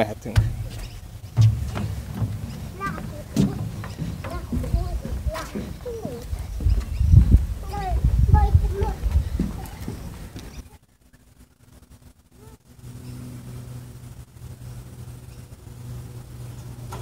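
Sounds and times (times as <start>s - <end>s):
wheels rumbling on wooden boards: 0.0s - 10.8s
small child's voice: 2.7s - 6.7s, 7.6s - 10.8s, 12.3s - 12.7s.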